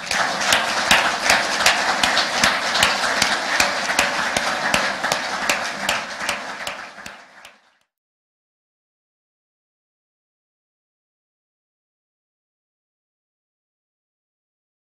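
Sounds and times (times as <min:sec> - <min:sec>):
audience applause: 0:00.0 - 0:07.8.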